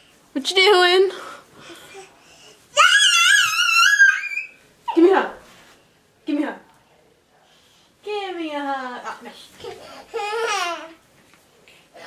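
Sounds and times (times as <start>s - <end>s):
child's high-pitched squeal: 2.8s - 4.6s.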